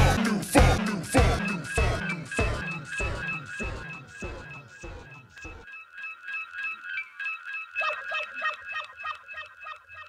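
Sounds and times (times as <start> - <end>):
high repeating beat: 0.0 - 5.7.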